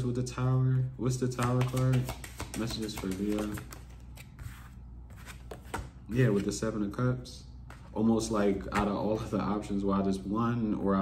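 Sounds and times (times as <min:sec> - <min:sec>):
cards being shuffled: 0:01.4 - 0:06.6.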